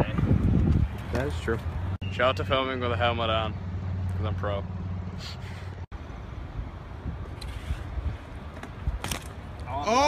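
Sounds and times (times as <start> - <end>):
wind rumble on microphone: 0.0 - 1.6.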